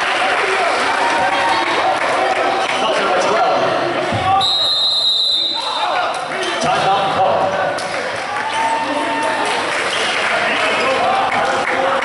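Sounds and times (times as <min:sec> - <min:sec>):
crowd chatter: 0:00.0 - 0:12.0
referee's whistle: 0:04.4 - 0:05.8.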